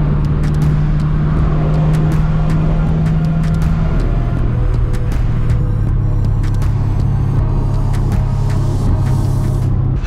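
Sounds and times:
car engine droning in cabin: 0.0 - 10.0
road and wind noise: 0.0 - 10.0.

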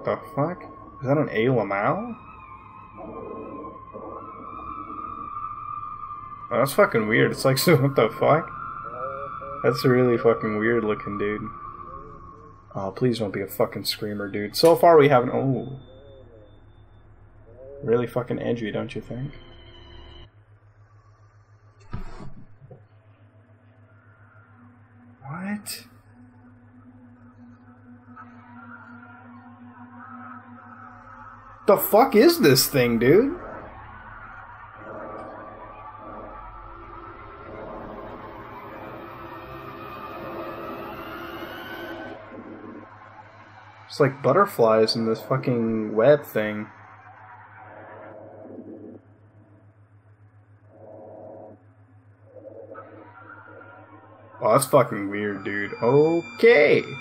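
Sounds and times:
faint wavering high tones: 0.0 - 20.3, 23.5 - 57.0
pulsing tone: 0.0 - 22.3, 22.9 - 57.0
droning ambient soundtrack: 0.0 - 57.0
steady low hum: 0.0 - 57.0.

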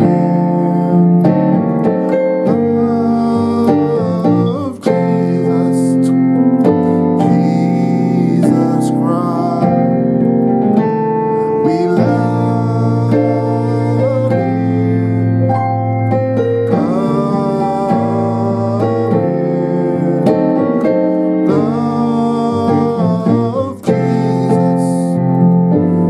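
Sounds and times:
piano playing gospel chords: 0.0 - 26.0.

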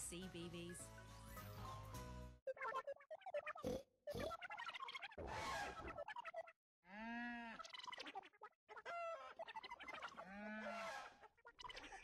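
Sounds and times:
squeaky cartoon voices chattering: 2.5 - 6.6, 7.6 - 12.0.

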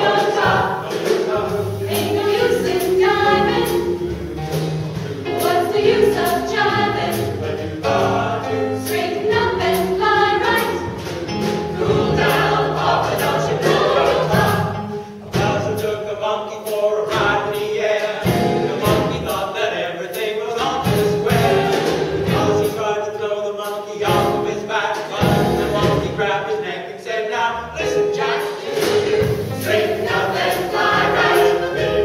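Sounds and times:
a cappella vocal ensemble singing: 0.0 - 32.0.

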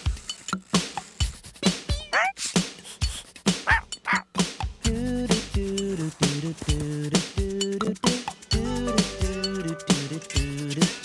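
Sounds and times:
cartoon music with percussive beat: 0.0 - 11.0
cartoon dog whimpering: 1.8 - 2.4, 3.7 - 4.2
dog yipping: 1.9 - 2.4, 3.7 - 4.2.

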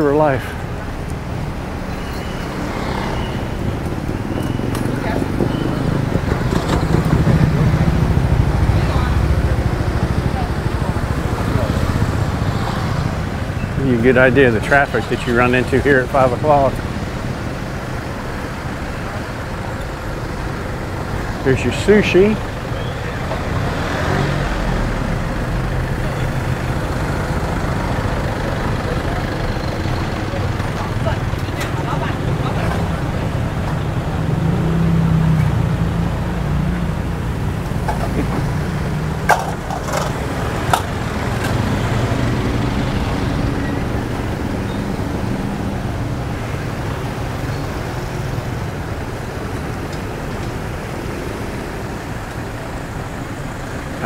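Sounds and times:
cars and motorbikes idling: 0.0 - 54.0.

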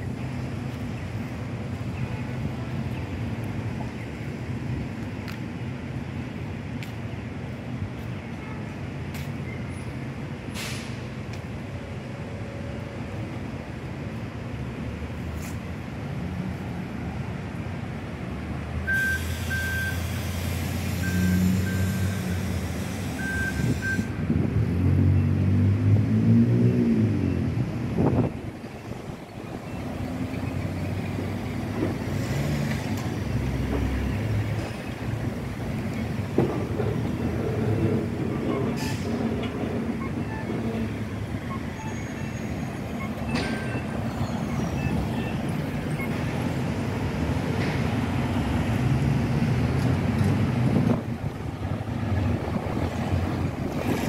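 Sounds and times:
street traffic passing: 0.0 - 54.0
short high beeps: 18.9 - 20.0
vehicle accelerating: 24.4 - 28.3.

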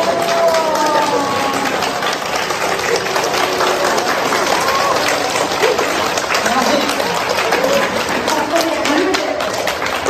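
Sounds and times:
voices calling out: 0.0 - 9.7
crowd clapping: 0.0 - 10.0.

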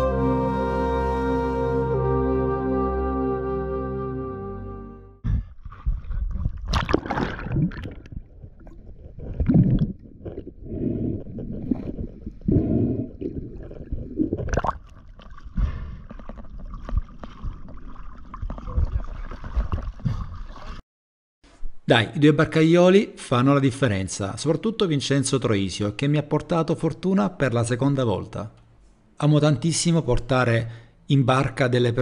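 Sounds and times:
background music: 0.0 - 5.2
sea water sloshing and splashing: 6.2 - 10.5, 13.2 - 20.8
water gurgling: 6.2 - 20.8.

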